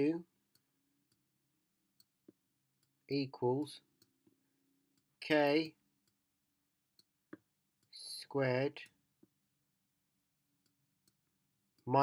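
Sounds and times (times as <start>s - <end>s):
man speaking: 0.0s - 0.3s, 3.1s - 3.8s, 5.2s - 5.8s, 8.0s - 8.9s.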